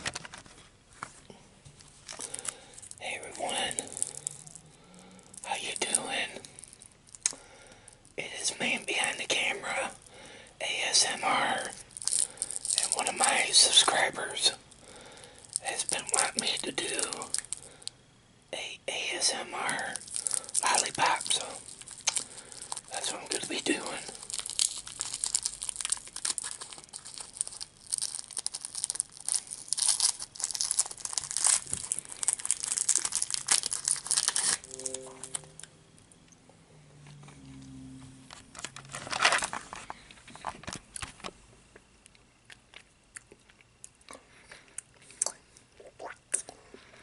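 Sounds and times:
wrapper crinkling and tearing: 1.8s - 10.2s, 11.3s - 17.9s, 18.9s - 35.4s, 38.5s - 39.9s
man whispering: 3.0s - 4.6s, 5.4s - 6.5s, 8.2s - 11.8s, 12.7s - 14.6s, 15.6s - 17.4s, 18.5s - 20.0s, 20.6s - 21.6s, 22.9s - 24.2s.

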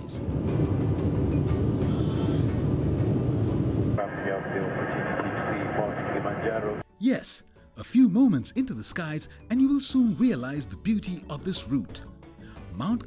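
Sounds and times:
jet engine and air rumble in cabin: 0.3s - 6.8s.

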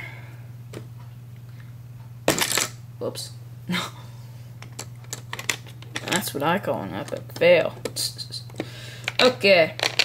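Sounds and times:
plastic pieces clicking: 7.0s - 10.0s.

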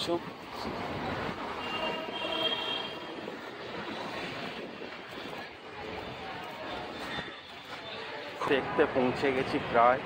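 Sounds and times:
street traffic: 0.0s - 10.0s.

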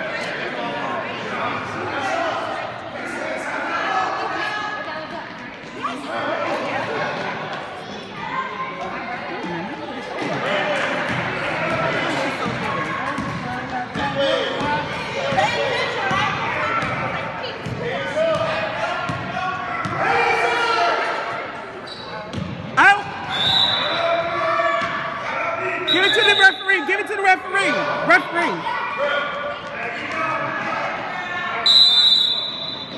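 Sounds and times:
voices of spectators and players: 0.0s - 32.9s
basketballs bouncing on hardwood: 13.1s - 14.7s
high whistle: 23.3s - 24.0s, 25.9s - 26.8s, 31.6s - 32.9s.

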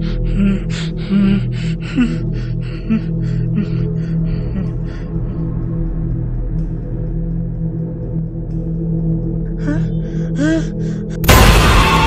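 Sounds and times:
panting gasping breaths: 0.0s - 5.2s
eerie low music drone: 0.0s - 12.0s.

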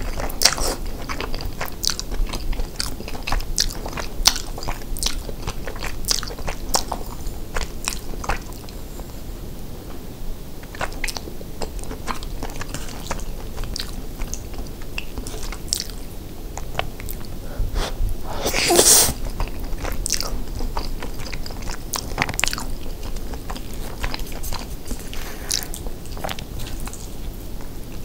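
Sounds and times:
chewing and wet mouth sounds: 0.0s - 9.1s, 10.6s - 28.0s
loud hissing sound: 17.7s - 19.2s.

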